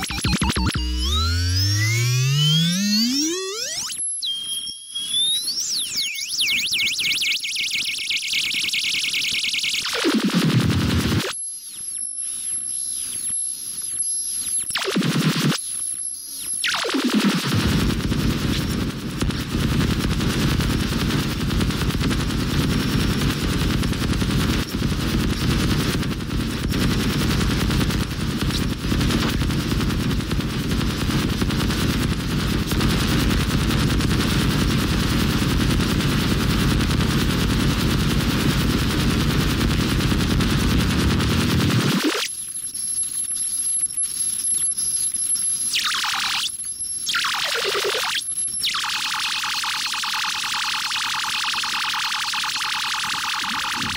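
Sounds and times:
harsh electronic noise music: 0.0s - 7.5s, 9.8s - 11.4s, 14.7s - 15.6s, 16.6s - 42.3s, 47.1s - 53.9s
high electronic whine: 0.0s - 53.9s.

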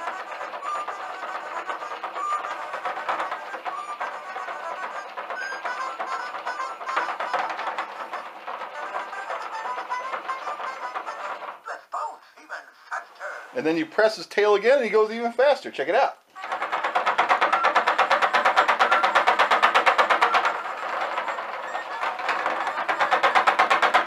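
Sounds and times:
toy playing electronic tune: 0.0s - 11.4s, 17.3s - 23.5s
toy mechanism clicking: 0.0s - 11.8s, 16.3s - 24.0s.

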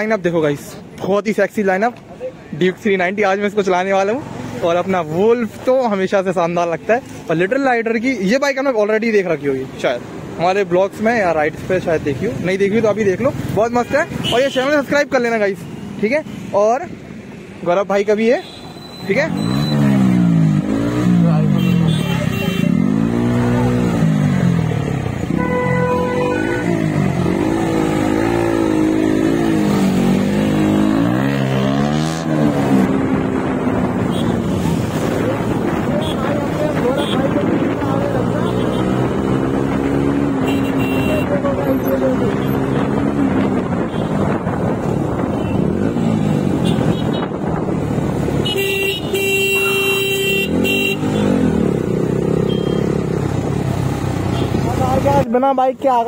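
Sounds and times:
motorcycles in city traffic: 0.0s - 56.0s
motorcycle engine revving: 19.0s - 55.3s
vehicle horn honking: 21.5s - 22.8s, 25.3s - 26.8s, 40.4s - 41.4s, 48.4s - 51.4s, 52.4s - 52.8s.

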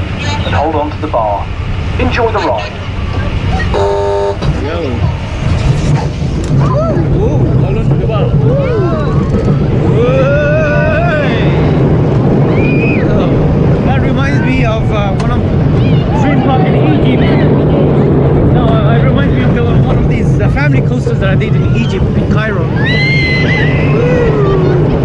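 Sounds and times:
roller coaster rumbling on track: 0.0s - 25.0s.

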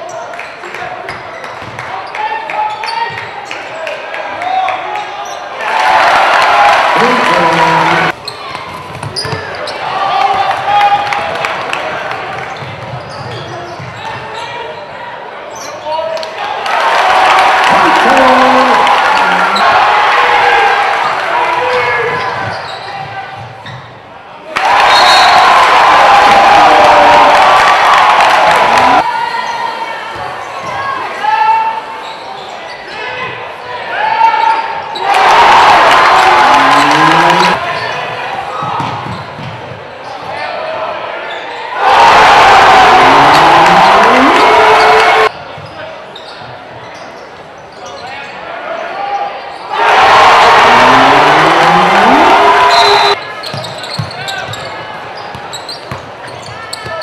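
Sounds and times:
loud crowd noise: 0.0s - 57.0s
voices shouting: 17.0s - 20.6s, 24.6s - 29.1s, 35.0s - 37.6s, 41.8s - 45.3s, 49.7s - 53.2s.

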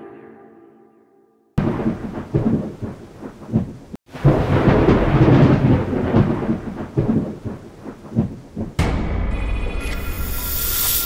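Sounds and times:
rain: 1.6s - 8.8s
thunder rumbling: 1.6s - 9.3s.

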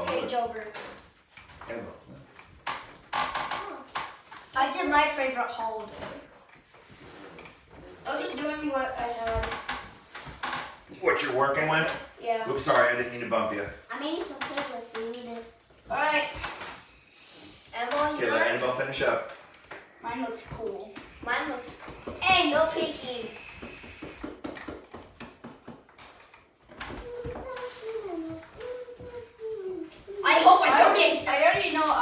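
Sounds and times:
children talking: 27.0s - 32.0s.

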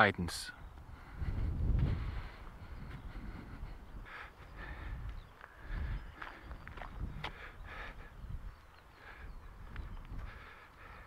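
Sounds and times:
wind buffeting microphone: 0.6s - 11.0s
footsteps on gravel: 5.0s - 7.5s.

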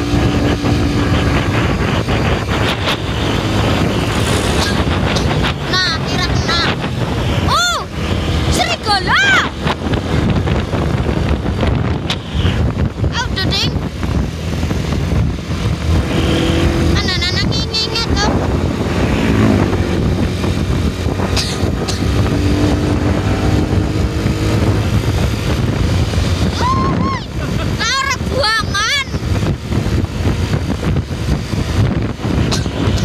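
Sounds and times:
vehicle engine tyre and wind noise: 0.0s - 33.0s.

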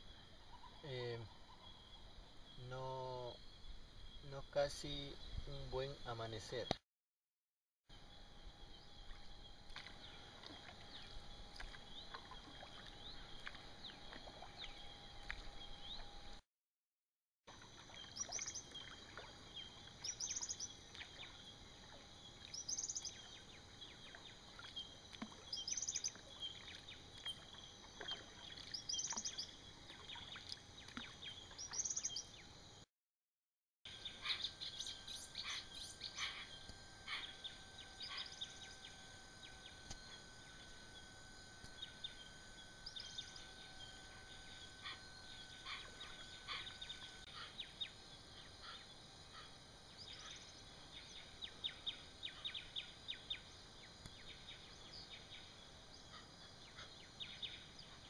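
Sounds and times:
bird rising high call: 34.0s - 38.8s, 42.8s - 47.9s
hoatzins calling: 34.0s - 38.8s, 44.2s - 53.4s
other birds: 34.0s - 40.2s, 42.8s - 53.5s.

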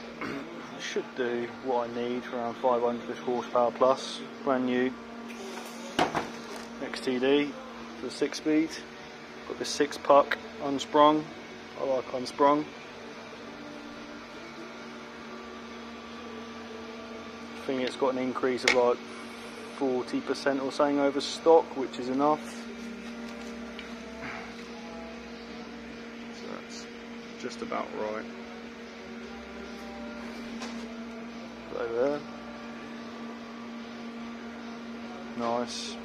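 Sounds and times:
low electrical hum: 0.0s - 36.0s.

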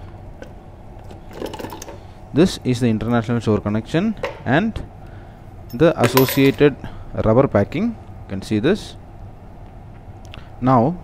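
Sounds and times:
metal bolts clinking in plastic box: 5.7s - 6.6s.

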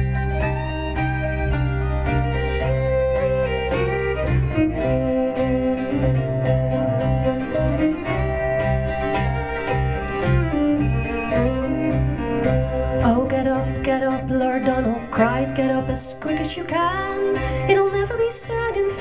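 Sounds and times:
low bass: 0.0s - 18.6s
fiddle playing: 0.0s - 19.0s
plucked-string accompaniment: 0.0s - 19.0s.

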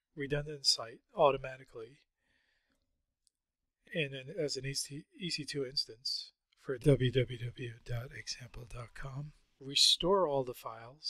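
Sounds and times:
man talking: 0.2s - 2.0s, 3.9s - 11.0s.

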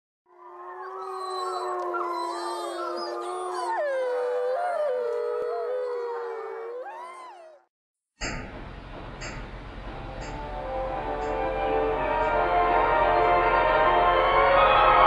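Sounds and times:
wolves howling: 0.3s - 7.7s.

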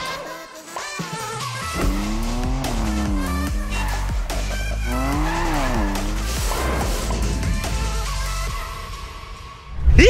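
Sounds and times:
music with heavy bass beat: 1.1s - 9.1s
sports car engine revving: 1.7s - 8.5s.

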